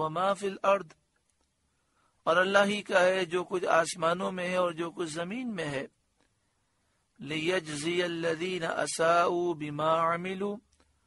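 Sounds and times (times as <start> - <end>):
man chanting melodic recitation: 0.0 - 1.0, 2.3 - 5.9, 7.2 - 10.6.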